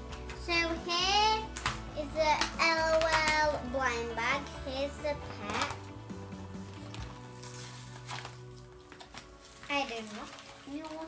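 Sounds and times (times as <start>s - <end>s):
faint music with held notes: 0.0s - 11.0s.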